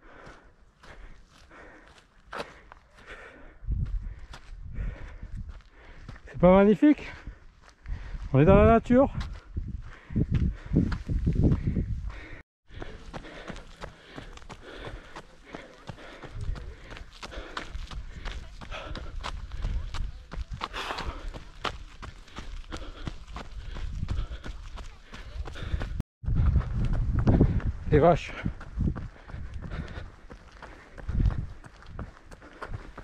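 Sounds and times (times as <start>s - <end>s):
person breathing: 0.0s - 6.2s, 7.1s - 8.3s, 9.3s - 20.0s, 20.6s - 26.6s, 28.4s - 33.0s
footsteps on dirt path: 0.0s - 33.0s.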